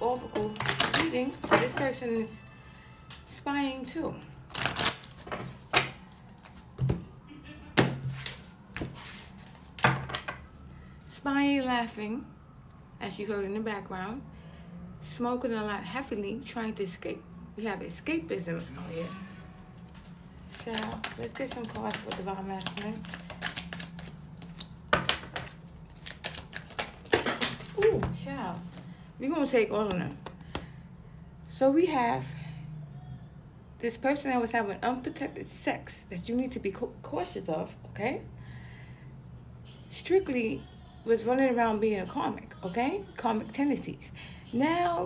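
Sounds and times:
cards being shuffled: 4.5s - 7.0s, 8.0s - 9.8s, 19.7s - 28.9s, 29.8s - 30.7s.

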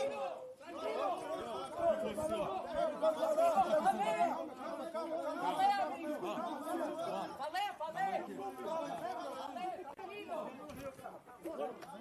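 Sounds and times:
men talking and shouting: 0.0s - 12.0s.

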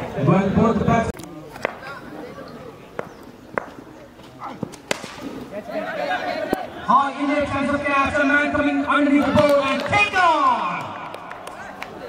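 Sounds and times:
players and spectators voices: 0.0s - 12.0s
cricket bat striking ball: 4.6s - 5.5s.

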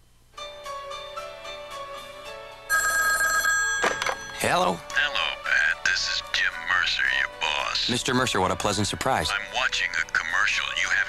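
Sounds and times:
soft background music: 0.0s - 11.0s
telephone ringing: 2.7s - 4.7s.

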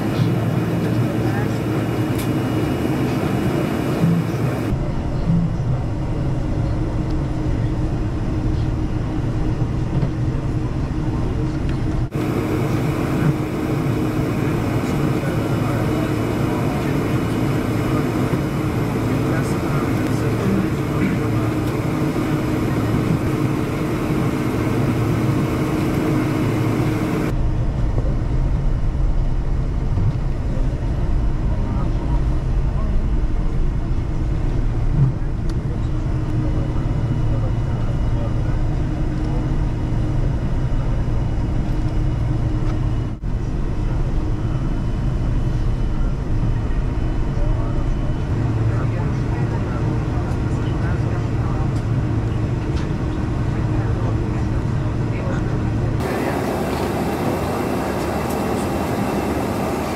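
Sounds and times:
airplane cabin engine rumble: 0.0s - 59.9s.

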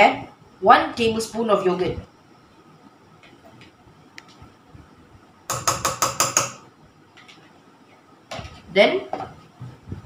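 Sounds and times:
spoon tapping metal pot: 5.5s - 6.7s.

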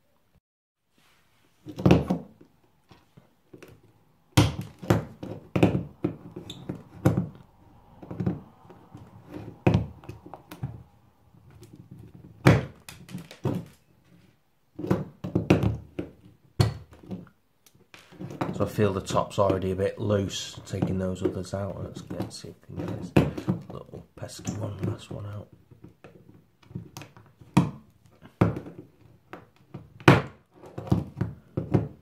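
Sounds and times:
plastic case handled: 11.4s - 18.7s.

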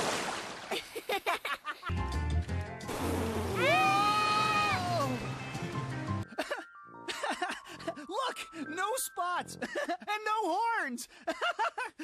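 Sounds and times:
high-pitched yell: 3.6s - 5.2s.

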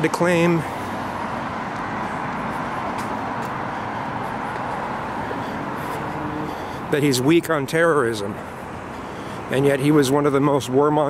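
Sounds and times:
city street traffic: 0.0s - 11.0s.

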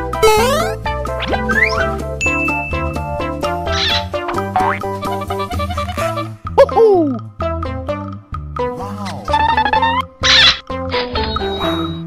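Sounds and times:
upbeat children's music: 0.0s - 12.0s.

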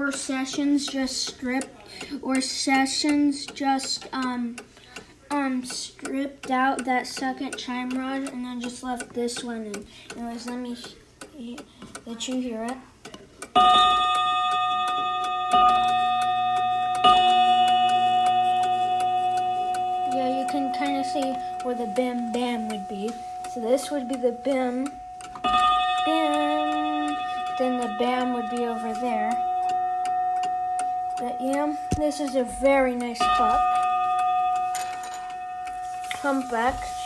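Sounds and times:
clock ticking: 0.0s - 37.0s
clock chime strike: 13.6s - 37.0s.

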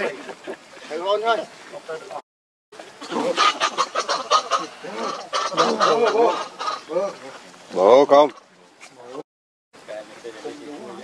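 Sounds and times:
macaques calling: 3.0s - 8.5s.

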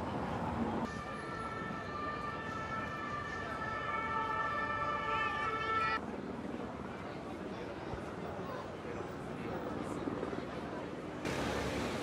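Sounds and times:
city street traffic: 0.0s - 12.0s
emergency vehicle siren: 0.8s - 6.0s.

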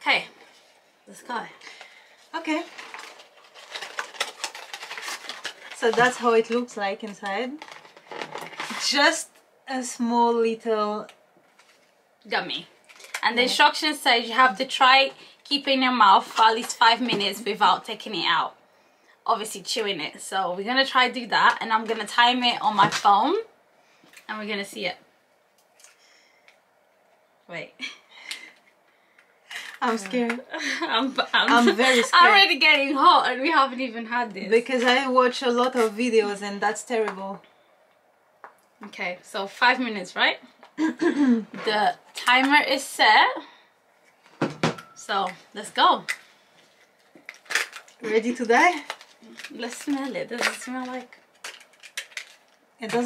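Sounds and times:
faint small clicks and rustles: 48.7s - 53.0s.

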